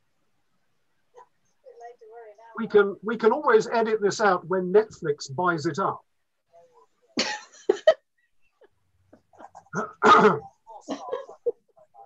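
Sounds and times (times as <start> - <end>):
person laughing: 9.3 - 11.7
person coughing: 9.7 - 11.4.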